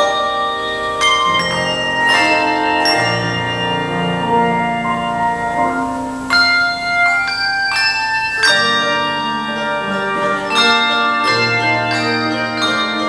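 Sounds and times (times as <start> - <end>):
handbell choir playing: 0.0 - 13.0.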